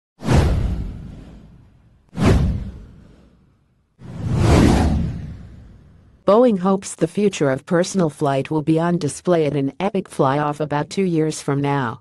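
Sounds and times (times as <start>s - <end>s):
deep whoosh effects: 0.2s - 6.2s.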